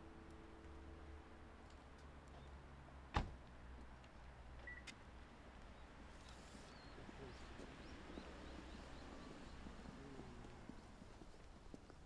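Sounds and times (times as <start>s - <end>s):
short faint beep: 4.6s - 4.9s.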